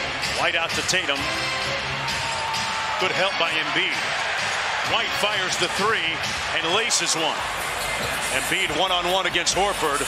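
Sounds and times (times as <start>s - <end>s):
arena music: 0.0s - 10.0s
crowd noise: 0.1s - 10.0s.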